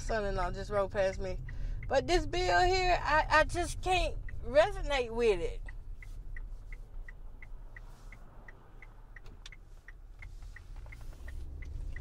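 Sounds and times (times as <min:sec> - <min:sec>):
car turn signal clicking: 0:00.0 - 0:12.0
moving car rumble: 0:00.0 - 0:12.0.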